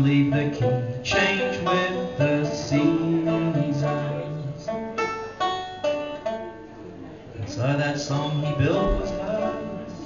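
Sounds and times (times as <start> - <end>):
banjo plucking single notes: 0.0 - 10.0.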